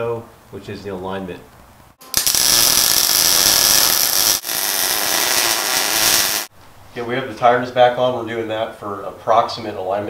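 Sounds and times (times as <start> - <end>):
arc welder crackling: 2.0 - 6.5.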